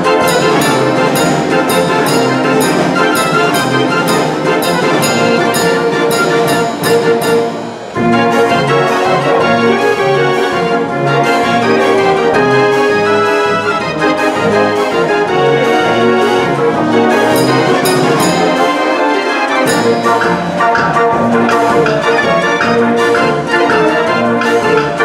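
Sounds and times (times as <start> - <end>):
street organ playing a tune: 0.0 - 25.0.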